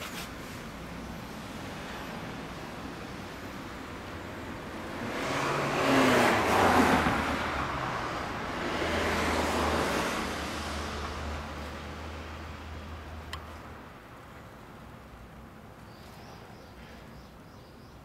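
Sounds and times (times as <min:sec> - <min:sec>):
cars passing by: 0:00.0 - 0:18.0.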